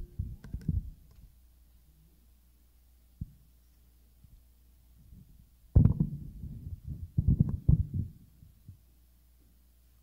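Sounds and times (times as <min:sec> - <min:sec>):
microphone handling thumps: 0:05.0 - 0:08.8.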